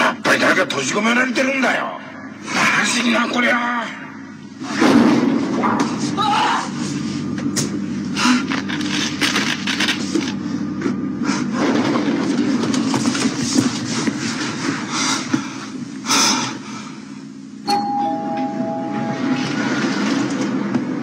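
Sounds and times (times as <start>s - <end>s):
noisy background: 0.0s - 21.0s
two-note elevator chime: 17.6s - 19.8s.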